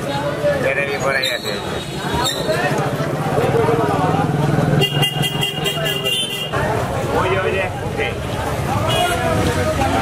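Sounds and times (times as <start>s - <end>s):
street noise: 0.0s - 10.0s
voices: 0.0s - 10.0s.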